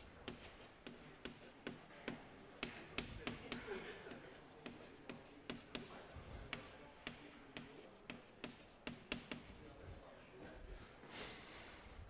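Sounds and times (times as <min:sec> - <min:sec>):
chalk writing on blackboard: 0:00.0 - 0:10.2.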